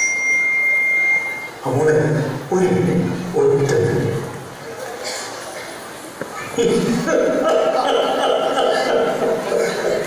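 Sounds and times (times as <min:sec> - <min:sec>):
steady high-pitched tone: 0:00.0 - 0:01.8.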